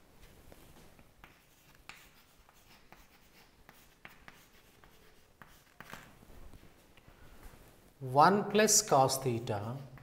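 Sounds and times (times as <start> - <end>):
chalk tapping and scratching on chalkboard: 0.6 - 7.0, 9.6 - 10.0.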